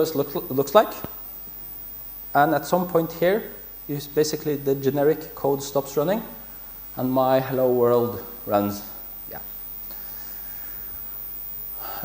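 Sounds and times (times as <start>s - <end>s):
room hiss: 0.0s - 12.0s
man breathing into microphone: 9.9s - 11.0s.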